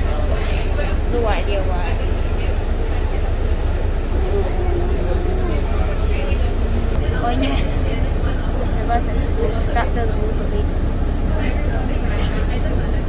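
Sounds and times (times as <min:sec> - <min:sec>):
bus diesel engine rumbling: 0:00.0 - 0:13.0.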